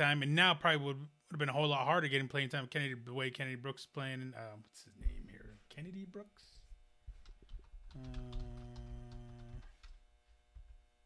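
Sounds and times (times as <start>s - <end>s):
typing on computer keyboard: 7.2s - 10.0s
man saying uhh: 7.9s - 9.7s.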